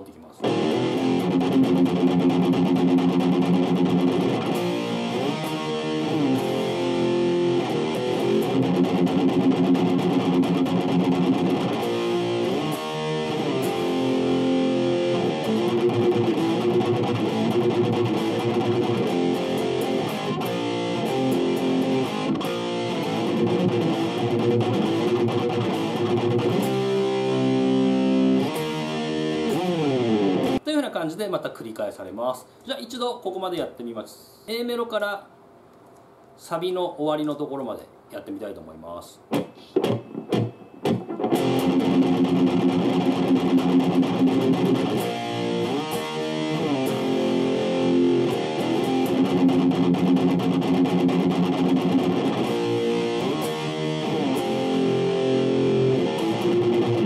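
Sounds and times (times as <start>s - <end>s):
distorted electric guitar riff: 0.4s - 30.6s, 39.3s - 57.0s.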